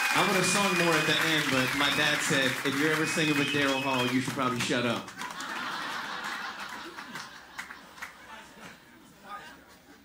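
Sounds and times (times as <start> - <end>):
audience laughing: 5.0 - 10.0.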